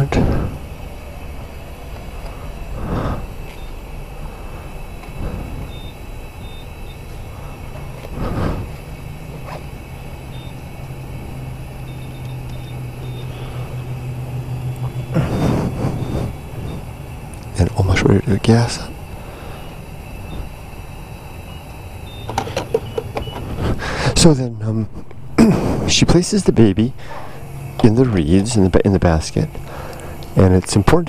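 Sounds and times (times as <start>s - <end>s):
vehicle engine humming: 0.0s - 31.0s
faint high-pitched beeps: 3.3s - 3.8s, 4.9s - 7.2s, 10.2s - 10.7s, 11.8s - 13.5s, 21.4s - 23.4s.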